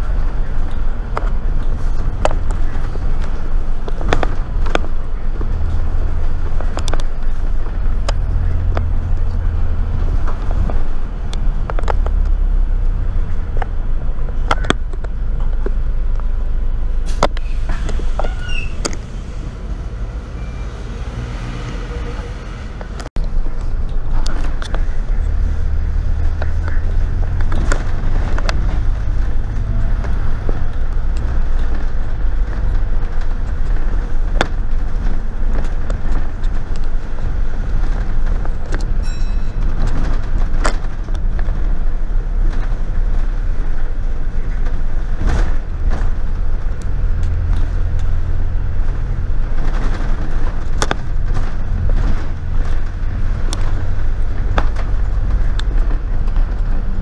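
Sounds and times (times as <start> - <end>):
bus body rattles and clicks: 0.0 - 57.0
bus engine rumble: 0.0 - 57.0
road noise: 0.0 - 57.0.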